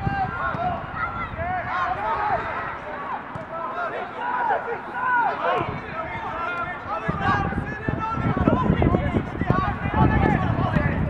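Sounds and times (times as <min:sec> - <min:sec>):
footballers shouting calls: 0:00.0 - 0:11.0.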